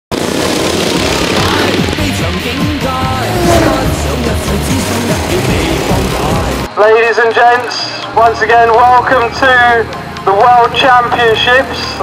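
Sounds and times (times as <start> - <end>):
lawnmower engines revving: 0.1 - 6.7
upbeat music: 1.7 - 6.7.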